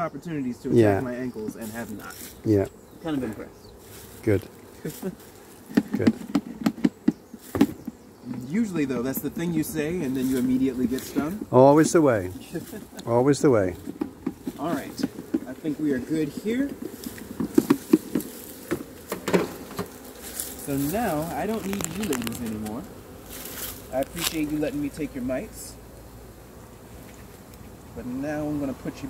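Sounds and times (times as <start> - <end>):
honeybees buzzing in pulses: 0.0 - 29.0
footsteps on bark mulch: 1.4 - 8.0, 9.6 - 25.3.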